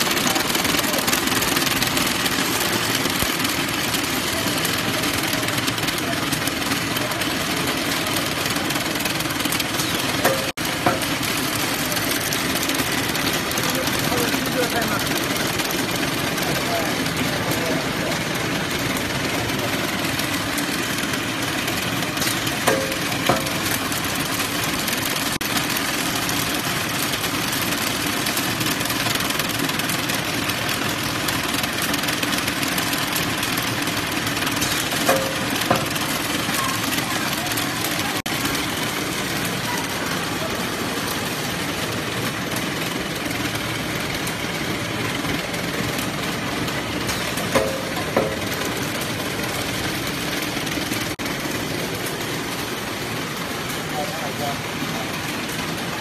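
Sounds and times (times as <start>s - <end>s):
short sharp machine sounds: 0.0s - 52.9s
wrapping machine clattering: 0.0s - 56.0s.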